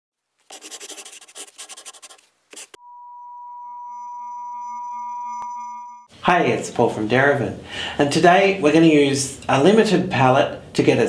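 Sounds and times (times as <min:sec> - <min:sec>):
scratchy rubbing noise: 0:00.5 - 0:02.8
steady electronic beep tone: 0:02.8 - 0:06.1.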